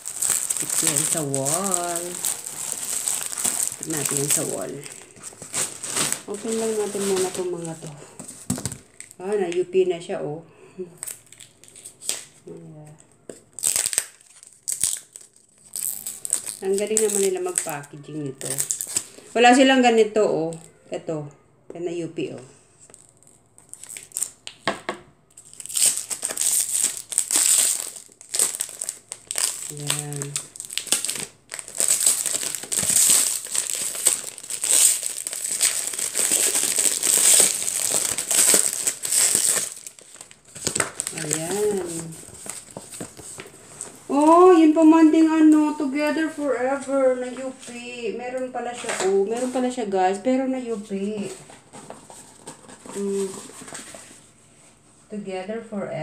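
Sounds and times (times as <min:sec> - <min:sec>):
packaging crinkling and tearing: 0:00.0 - 0:09.2, 0:11.0 - 0:12.4, 0:13.0 - 0:19.3, 0:22.9 - 0:44.2, 0:51.2 - 0:54.3.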